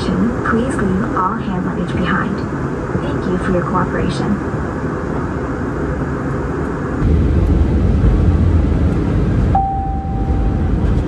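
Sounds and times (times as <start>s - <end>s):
airplane cabin engine rumble: 0.0s - 11.0s
steady tone: 6.8s - 11.0s.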